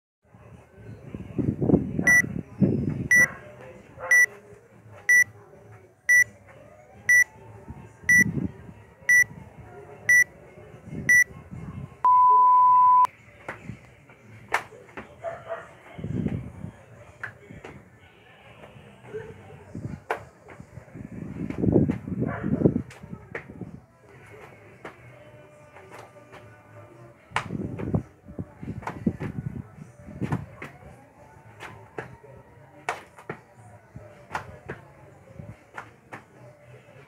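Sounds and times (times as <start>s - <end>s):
short high beeps: 12.1s - 13.1s
thuds of jumping on pavement: 27.3s - 28.1s, 28.7s - 29.4s, 30.2s - 30.8s, 34.3s - 34.9s.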